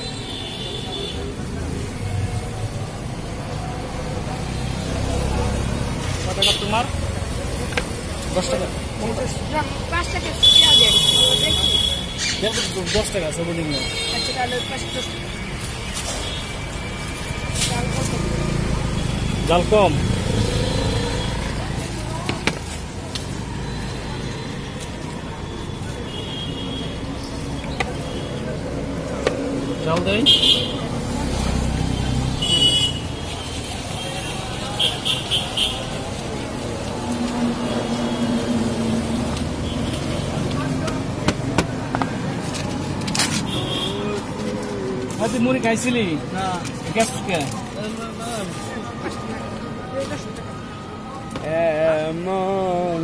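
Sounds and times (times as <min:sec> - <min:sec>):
traffic engine rumble: 0:00.0 - 0:53.0
people talking: 0:03.8 - 0:15.5, 0:17.4 - 0:26.4, 0:43.6 - 0:53.0.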